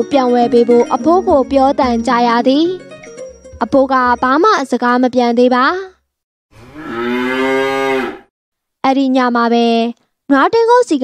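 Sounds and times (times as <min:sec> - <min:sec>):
cow mooing: 0:06.6 - 0:08.3.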